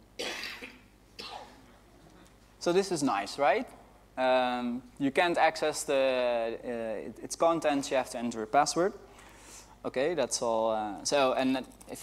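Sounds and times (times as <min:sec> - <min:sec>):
person coughing: 0:00.2 - 0:01.9.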